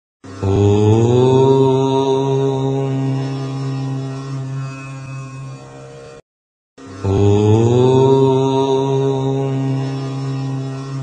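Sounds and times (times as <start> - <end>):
chanted devotional tone: 0.2 - 5.8, 6.8 - 11.0.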